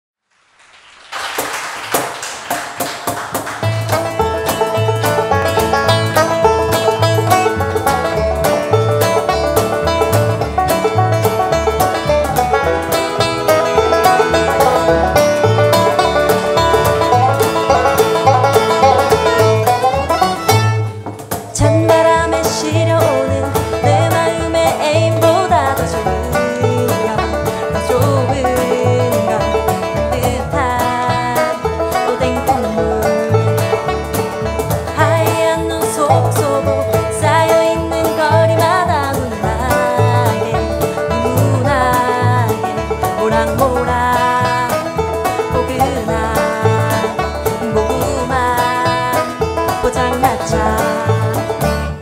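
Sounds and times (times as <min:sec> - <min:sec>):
banjo: 0:01.4 - 0:52.0
bluegrass band playing: 0:01.4 - 0:52.0
upright bass pulse: 0:03.6 - 0:52.0.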